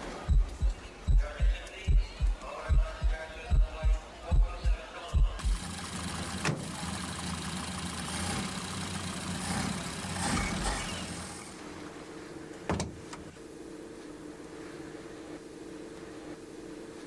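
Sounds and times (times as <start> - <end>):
car engine running: 5.4 - 11.5.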